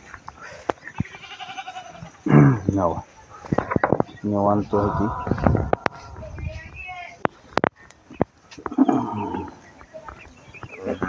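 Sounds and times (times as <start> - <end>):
calves bawling: 0.8 - 7.2.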